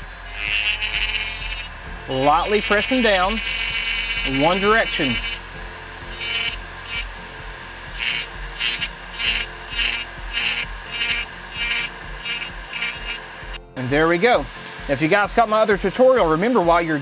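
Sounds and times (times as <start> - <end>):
rotary tool burr grinding wood: 0.0 - 17.0
rotary tool low hum: 0.0 - 17.0.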